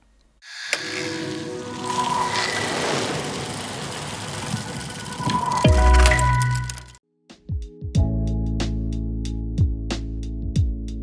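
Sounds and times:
rumbling electronic whoosh: 1.5 - 7.0.

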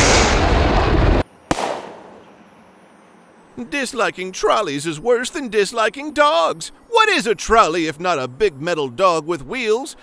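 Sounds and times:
cartoon rumbling blast: 0.0 - 1.8
sharp lightning crack: 0.0 - 2.2.

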